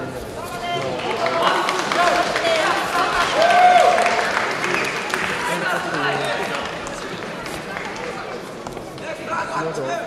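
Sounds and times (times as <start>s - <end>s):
crowd chatter and calls: 0.0s - 10.0s.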